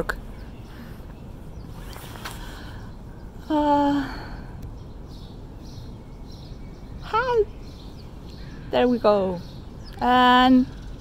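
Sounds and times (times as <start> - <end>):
low outdoor rumble: 0.0 - 11.0
faint short rustles: 0.8 - 2.8.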